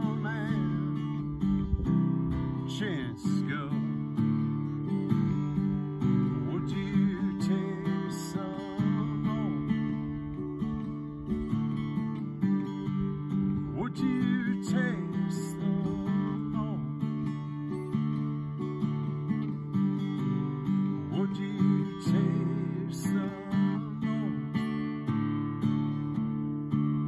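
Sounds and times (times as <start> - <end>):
acoustic guitar strumming: 0.0 - 27.0.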